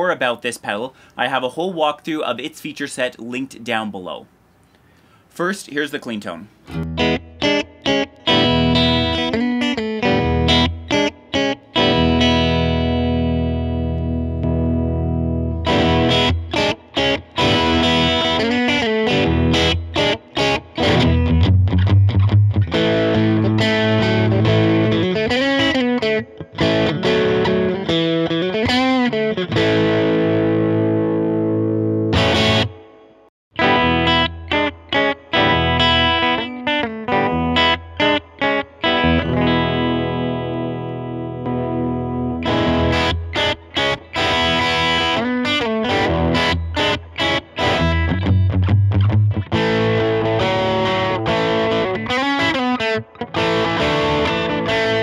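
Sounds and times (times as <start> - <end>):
clean electric guitar playing: 6.7 - 55.0.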